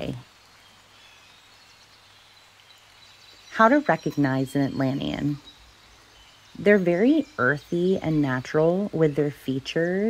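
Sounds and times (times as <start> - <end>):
faint steady background hiss: 0.0 - 10.0.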